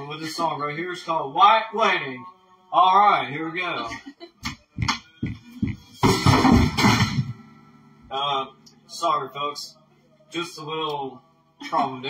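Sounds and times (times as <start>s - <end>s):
acoustic guitar strumming: 4.4s - 12.0s.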